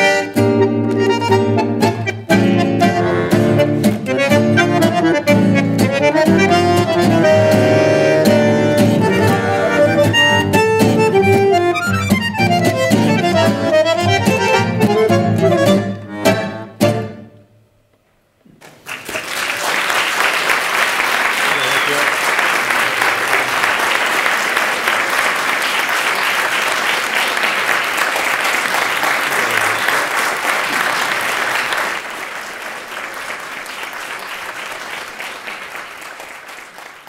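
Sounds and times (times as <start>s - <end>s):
guitar and bandoneon chord: 0.0s - 17.4s
audience applause: 18.6s - 37.0s.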